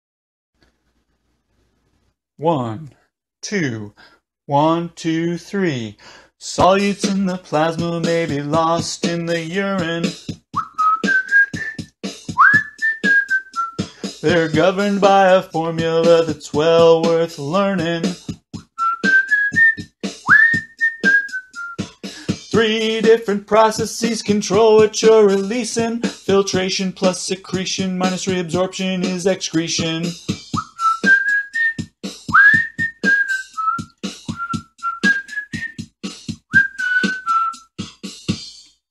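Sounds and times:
person whistling a melody: 10.0 - 14.3, 18.6 - 22.5, 30.4 - 37.8
rhythmic percussive strokes: 20.0 - 20.3, 32.0 - 32.3, 33.4 - 34.4, 36.0 - 36.4
steady clicking beat: 21.8 - 30.8, 33.8 - 34.8.

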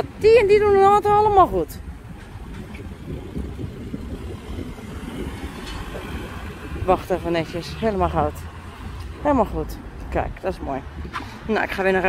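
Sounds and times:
cars driving slowly past: 1.6 - 12.0.

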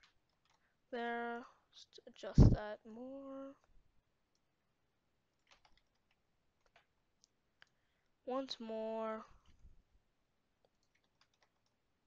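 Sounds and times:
computer mouse clicks: 5.4 - 7.8, 10.6 - 11.8.

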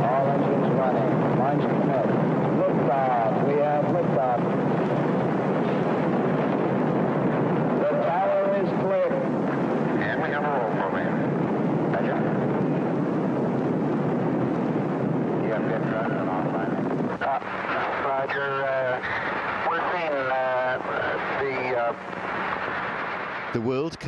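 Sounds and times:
rocket engines roaring: 0.0 - 24.0
commentator speaking: 10.0 - 11.3, 23.6 - 24.0.

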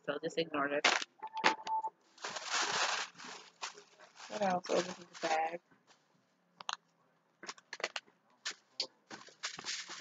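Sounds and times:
shopping bag rustling: 2.1 - 5.6, 8.5 - 10.0.

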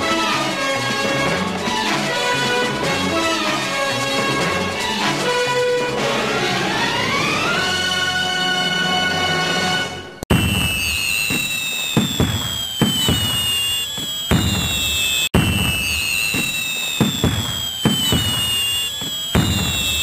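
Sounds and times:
high whistling tones sliding down: 10.3 - 20.0
sharp bangs: 10.3 - 20.0.

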